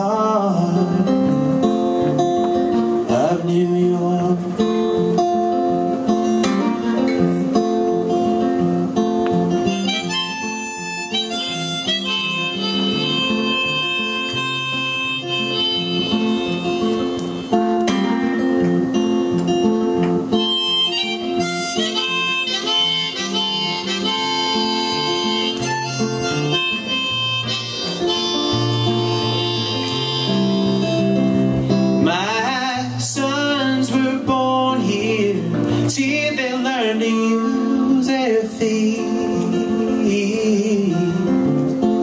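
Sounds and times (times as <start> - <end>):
strummed electric guitar: 0.0 - 42.0
harmonica solo: 9.6 - 17.7, 20.3 - 31.8.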